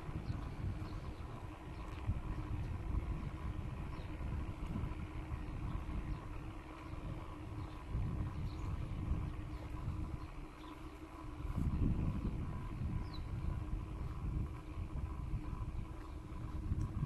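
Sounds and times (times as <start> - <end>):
faint steady hum: 0.0 - 17.0
wind rumble on microphone: 0.0 - 17.0.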